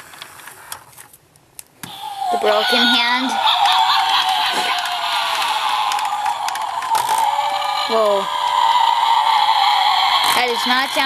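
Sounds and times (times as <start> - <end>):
warbling tone from small speaker: 5.8 - 11.0.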